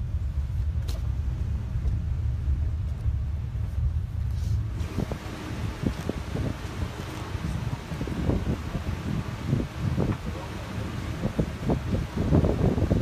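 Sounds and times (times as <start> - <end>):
low rumble of land train: 0.0 - 13.0
wind noise: 0.0 - 13.0.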